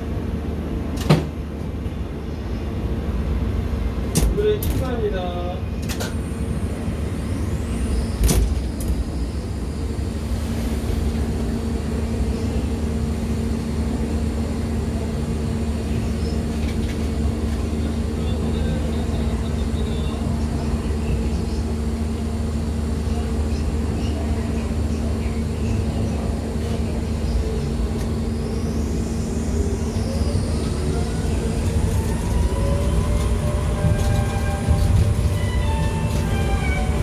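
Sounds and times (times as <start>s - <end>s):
monorail car rumbling on track: 0.0s - 37.0s.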